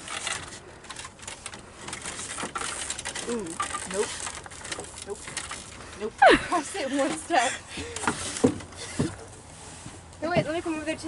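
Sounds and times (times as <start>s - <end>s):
rustling: 0.0s - 11.0s.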